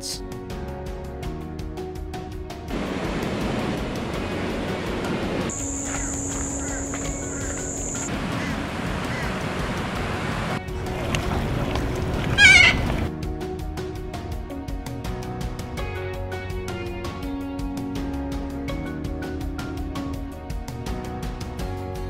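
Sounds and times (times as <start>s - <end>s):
background music: 0.0s - 22.0s
steady rushing noise: 2.7s - 13.1s
thin high whine: 5.5s - 8.1s
warbling animal call: 5.5s - 9.5s, 12.2s - 13.1s.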